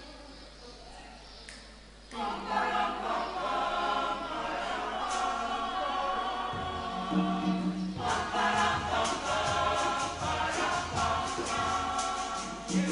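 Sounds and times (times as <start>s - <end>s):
mixed choir singing: 2.1s - 12.9s.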